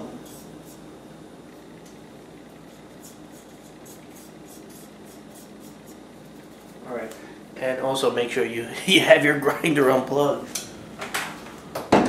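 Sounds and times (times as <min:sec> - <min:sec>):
steady low hum: 0:00.0 - 0:12.0
finger scraping ground coffee: 0:02.7 - 0:06.0.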